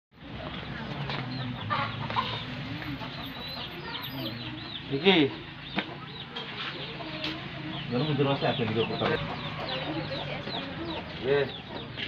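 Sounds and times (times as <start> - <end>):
chickens clucking: 0.2 - 12.0.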